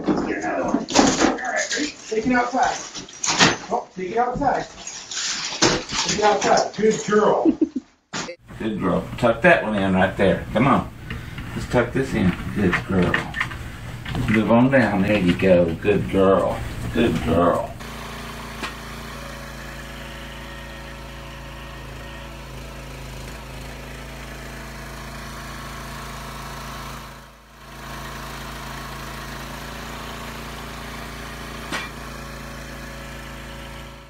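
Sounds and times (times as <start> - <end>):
small gasoline engine running: 8.5 - 34.0.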